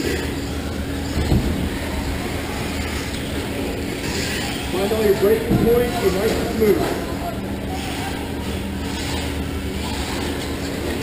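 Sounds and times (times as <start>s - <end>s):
low steady hum: 0.0s - 11.0s
rc trucks motor and tyre noise: 0.0s - 11.0s.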